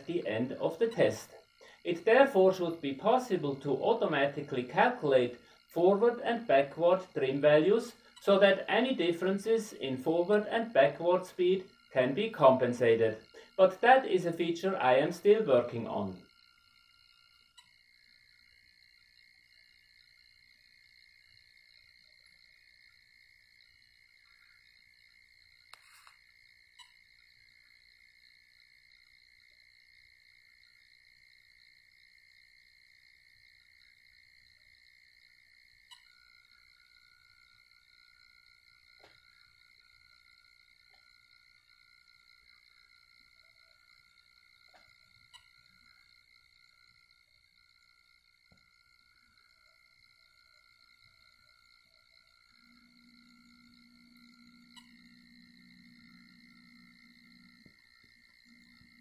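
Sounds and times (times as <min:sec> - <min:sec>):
faint high-pitched whine: 0:00.0 - 0:59.0.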